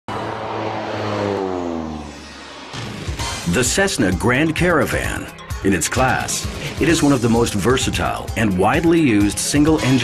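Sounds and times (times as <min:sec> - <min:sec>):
propeller airplane passing by: 0:00.1 - 0:02.8.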